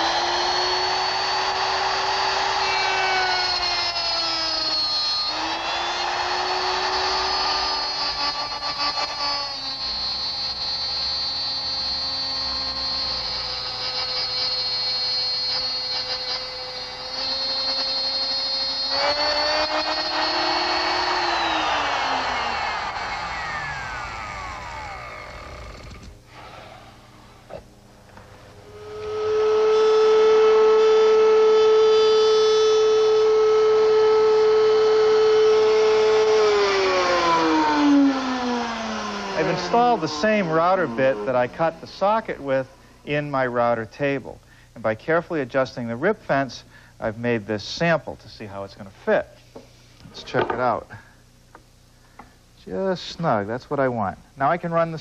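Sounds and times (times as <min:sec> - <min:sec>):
router spinning down: 0:00.0 - 0:27.6, 0:28.5 - 0:42.8
electric router running: 0:00.0 - 0:43.4.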